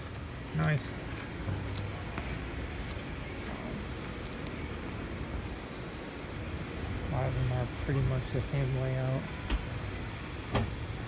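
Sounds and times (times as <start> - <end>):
indoor hall background noise: 0.0 - 11.0.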